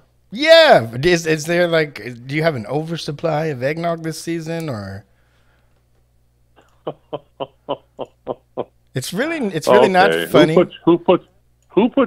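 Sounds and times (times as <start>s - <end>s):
person laughing over telephone: 6.6s - 8.8s.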